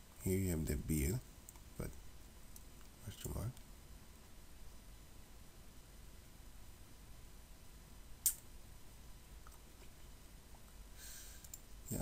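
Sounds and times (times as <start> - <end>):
computer mouse click: 11.4 - 11.7.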